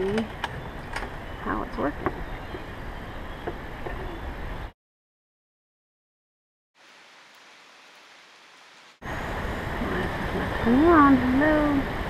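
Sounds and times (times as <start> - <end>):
forest canopy rushing ambience: 0.0 - 4.7, 6.8 - 12.0
faint steady hiss: 6.8 - 12.0.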